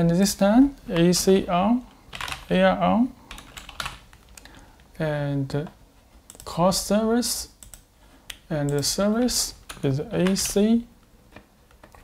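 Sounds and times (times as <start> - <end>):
computer keyboard typing: 2.1 - 2.5, 3.3 - 4.5, 6.3 - 6.6, 7.5 - 10.6.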